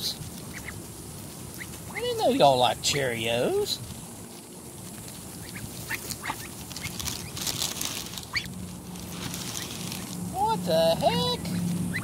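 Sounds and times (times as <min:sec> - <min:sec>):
ducklings peeping: 0:00.0 - 0:12.0
rustling in grass: 0:00.0 - 0:12.0.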